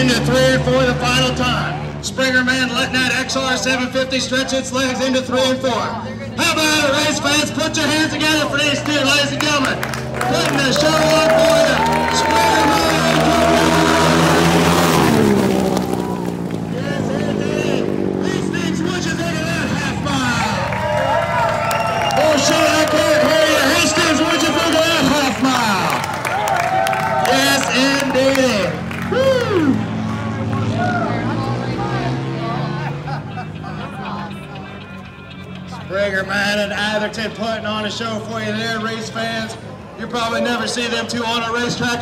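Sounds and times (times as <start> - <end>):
motorcycle engines at low throttle: 0.0 - 26.2, 27.3 - 42.0
race motorcycle passing: 0.0 - 42.0
crowd cheering and whooping: 9.9 - 16.4, 20.1 - 31.3.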